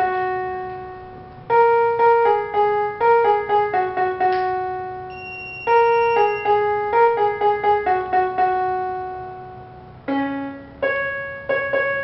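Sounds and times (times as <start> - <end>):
electronic keyboard melody: 0.0 - 12.0.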